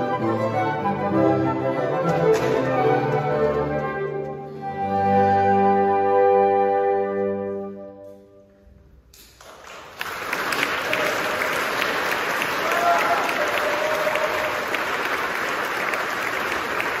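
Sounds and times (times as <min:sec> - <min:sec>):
audience applauding: 0:09.3 - 0:17.0.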